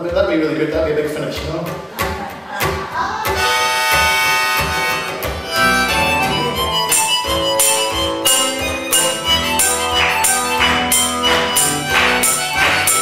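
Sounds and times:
acoustic guitar strumming: 1.6s - 13.0s
long held notes: 3.4s - 13.0s.

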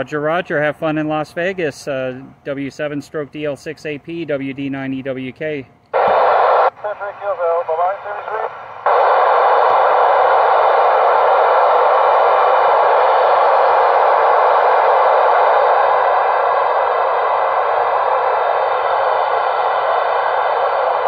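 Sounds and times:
faint steady tones: 5.6s - 21.0s
radio receiver hiss: 6.0s - 21.0s.

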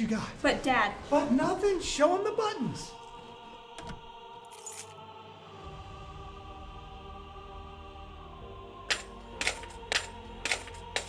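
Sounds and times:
coins clinking onto coins: 4.5s - 5.0s, 8.9s - 11.0s.

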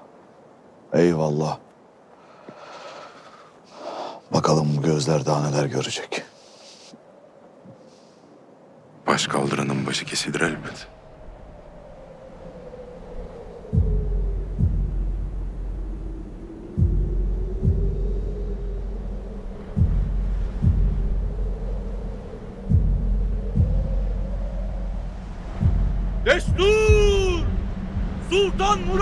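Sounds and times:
low wavering drone: 11.3s - 26.3s
deep heartbeat drum hits: 13.8s - 15.5s, 16.8s - 19.0s, 19.7s - 22.0s, 22.6s - 28.3s.

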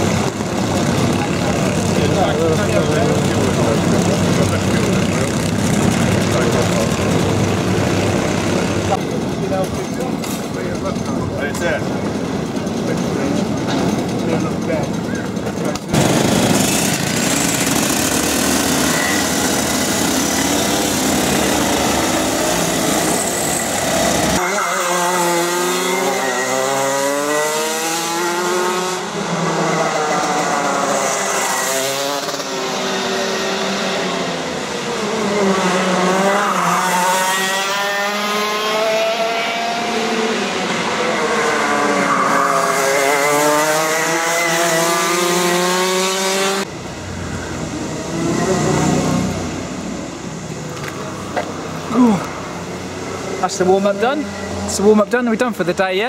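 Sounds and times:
kart engines accelerating: 0.0s - 56.0s
kart engines running: 0.0s - 56.0s.

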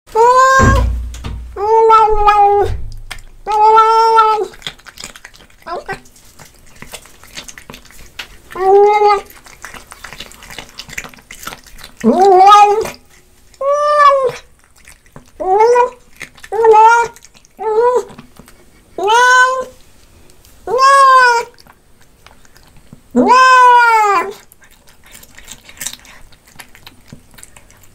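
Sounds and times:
cat making nom calls: 0.2s - 1.0s, 1.6s - 6.0s, 8.5s - 10.6s, 12.0s - 13.0s, 15.4s - 18.1s, 19.0s - 19.8s, 20.6s - 21.6s, 23.2s - 24.4s
cat chewing clicks: 4.4s - 12.1s, 24.5s - 27.9s.

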